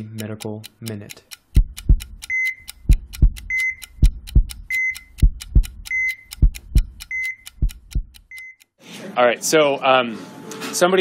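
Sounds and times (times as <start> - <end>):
clock ticking: 0.0 - 8.8
slow heartbeat thumps: 1.5 - 8.3
heart monitor beep: 1.6 - 8.7.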